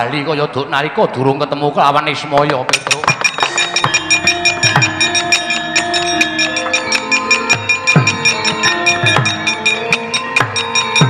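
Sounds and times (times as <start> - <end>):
drum strokes dropping in pitch: 2.7 - 11.0
metallophones and gongs ringing: 2.7 - 11.0.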